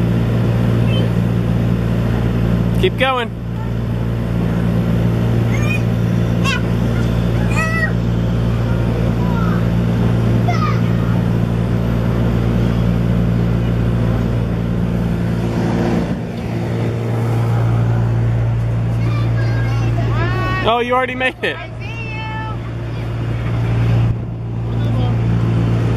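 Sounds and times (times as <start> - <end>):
electric blower fan humming: 0.0 - 25.9
children's voices: 5.4 - 11.4, 18.6 - 20.7, 21.6 - 23.3.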